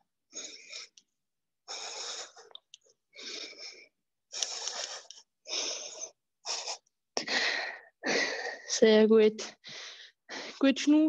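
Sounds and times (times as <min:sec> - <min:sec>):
person breathing hard: 0:00.3 - 0:01.0, 0:01.7 - 0:08.7, 0:09.6 - 0:10.6.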